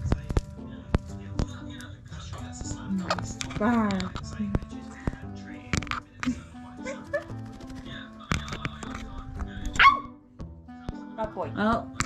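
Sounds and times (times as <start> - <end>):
background music: 0.0 - 12.0
parrot squawk: 9.8 - 10.2.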